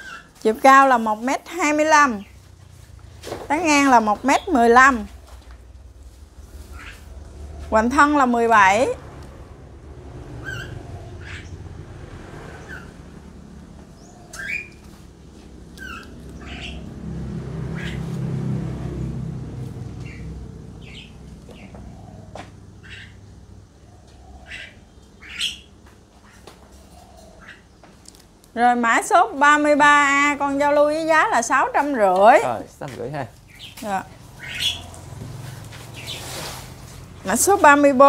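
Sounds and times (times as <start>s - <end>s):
small birds chirping: 0.0s - 9.4s, 10.0s - 18.4s, 19.0s - 38.0s
low rumble: 4.5s - 24.2s.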